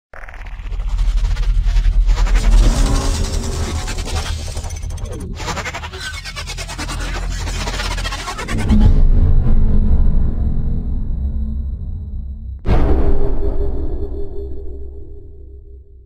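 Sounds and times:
mechanical clatter and whirring: 0:00.2 - 0:09.0
deep bass rumble: 0:08.6 - 0:16.0.

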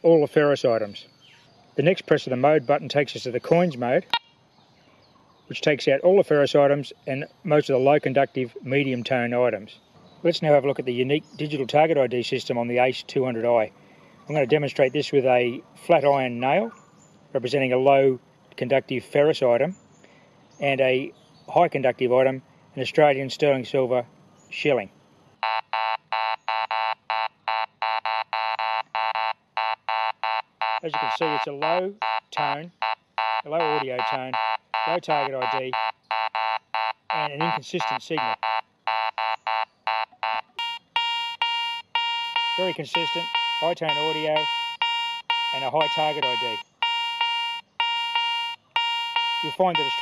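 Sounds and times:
metal detector beeps: 0:04.1 - 0:04.3, 0:25.4 - 0:50.0.

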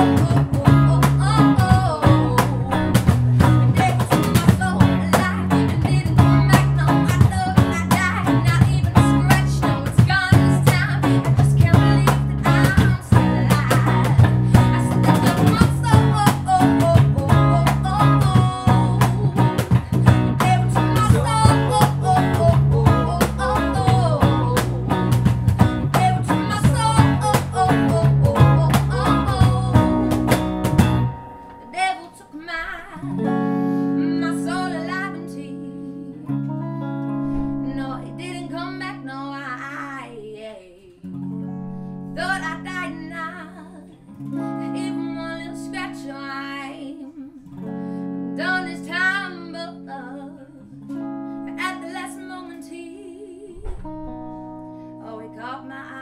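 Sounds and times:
woman singing: 0:00.0 - 0:30.7, 0:31.3 - 0:41.1, 0:42.1 - 0:56.0
bass guitar: 0:00.0 - 0:31.9, 0:33.0 - 0:40.1, 0:41.1 - 0:52.7, 0:53.6 - 0:56.0
electric guitar: 0:00.0 - 0:56.0.

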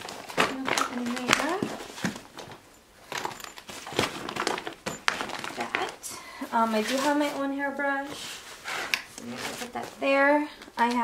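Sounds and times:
fabric packing cubes rustling: 0:00.0 - 0:11.0
plastic pouches crinkling: 0:00.0 - 0:11.0.

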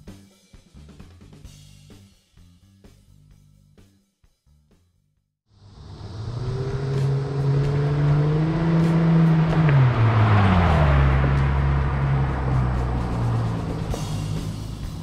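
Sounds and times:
car engine driving past: 0:05.5 - 0:15.0.

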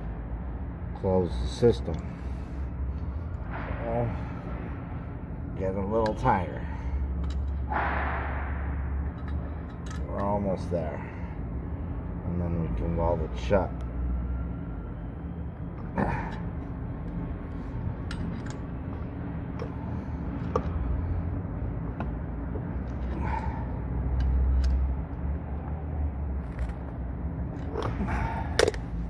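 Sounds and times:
low machinery hum: 0:00.0 - 0:29.0
small metallic clicks: 0:24.2 - 0:24.9.

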